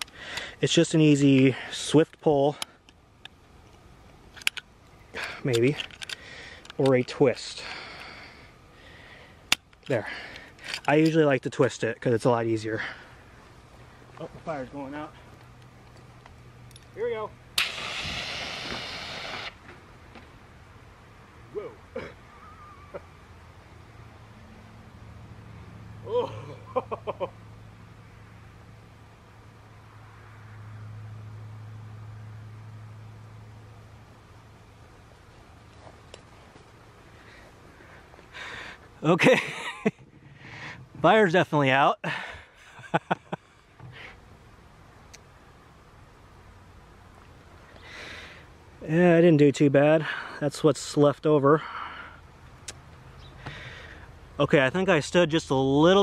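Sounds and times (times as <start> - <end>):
fire extinguisher hissing: 17.6 - 19.6
man laughing: 22.4 - 23.2, 26.0 - 27.4, 39.0 - 40.0, 42.0 - 43.5.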